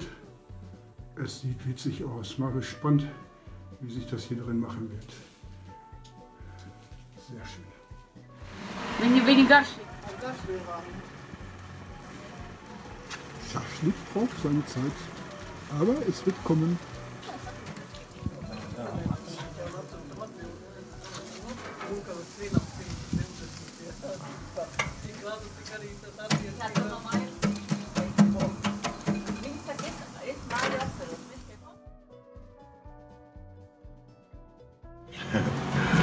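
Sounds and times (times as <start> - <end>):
meat sizzling over charcoal: 0.0 - 31.7, 35.1 - 36.0
faint music: 0.0 - 36.0
faint voices: 8.9 - 28.7
sharp crackles and pops: 9.3 - 31.6.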